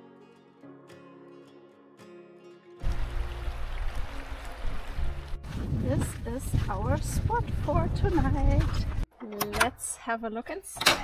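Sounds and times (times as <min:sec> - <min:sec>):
wind buffeting microphone: 0:03.7 - 0:09.1.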